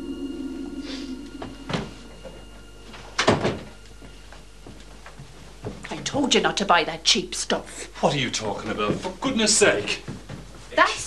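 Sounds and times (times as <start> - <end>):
door thudding open: 3.2 - 3.7.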